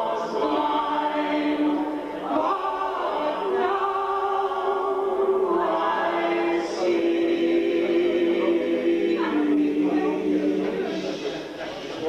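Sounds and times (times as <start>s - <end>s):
group singing in close harmony: 0.0s - 12.0s.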